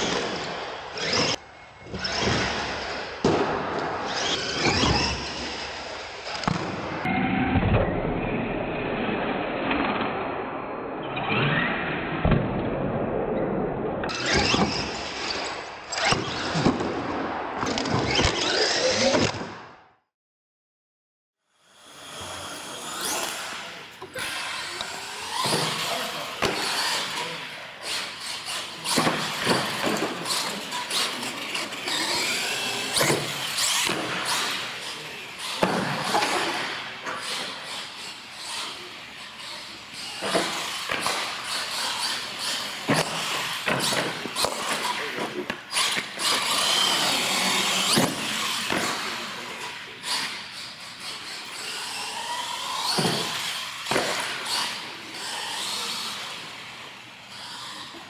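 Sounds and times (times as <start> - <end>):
toy truck motor whining: 17.8 - 19.1, 21.6 - 45.1, 45.7 - 56.5, 57.2 - 58.0.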